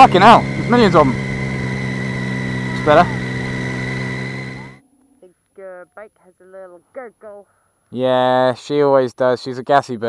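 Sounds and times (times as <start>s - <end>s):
motorcycle engine cruising: 0.0s - 4.8s.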